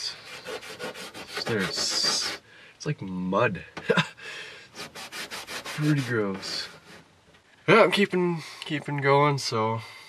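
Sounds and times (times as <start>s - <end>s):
cloth rubbing on plastic: 0.0s - 2.4s, 4.8s - 7.1s.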